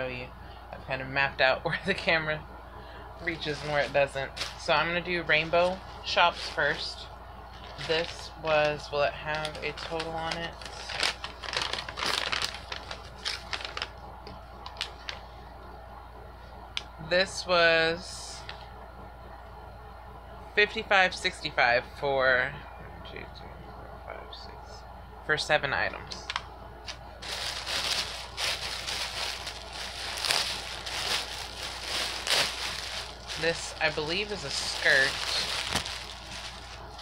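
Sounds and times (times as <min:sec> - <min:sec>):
paper rustling and crinkling: 0:03.2 - 0:14.0, 0:26.9 - 0:37.0.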